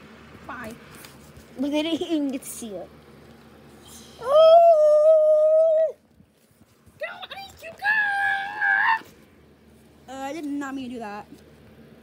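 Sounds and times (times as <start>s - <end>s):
child crying high-pitched: 7.2s - 9.1s.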